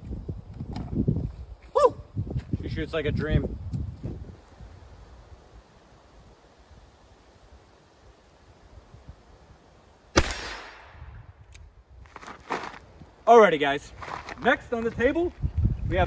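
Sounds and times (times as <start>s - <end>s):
low outdoor background: 0.0s - 16.0s
handgun shot: 10.2s - 11.1s.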